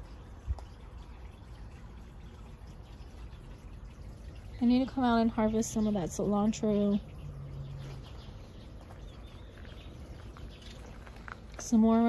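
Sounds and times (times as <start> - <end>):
distant bird chirps: 5.4 - 11.4.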